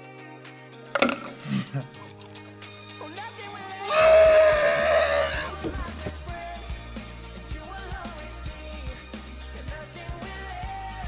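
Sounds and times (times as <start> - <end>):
background music: 0.0 - 11.0
loud high wavering cry: 3.9 - 5.5.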